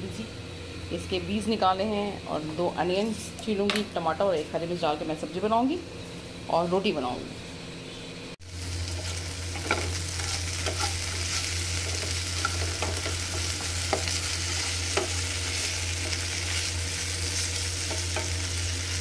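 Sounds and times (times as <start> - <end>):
vegetables sizzling in oil: 8.4 - 19.0
spatula scraping pan: 9.0 - 16.7.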